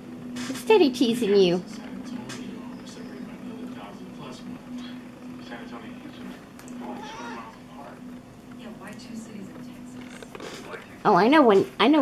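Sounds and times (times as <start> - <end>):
cat meowing: 6.8 - 7.6.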